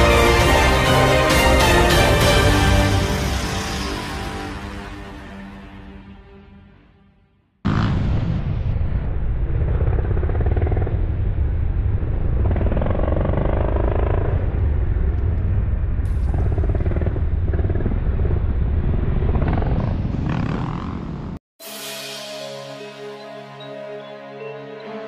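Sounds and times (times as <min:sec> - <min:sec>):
motorcycle engines rumbling: 0:09.7 - 0:21.4.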